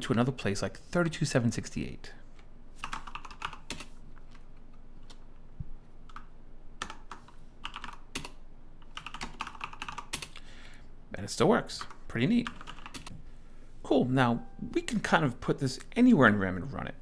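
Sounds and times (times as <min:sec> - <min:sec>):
computer keyboard typing: 0:02.8 - 0:04.4, 0:06.0 - 0:10.4, 0:11.8 - 0:13.1.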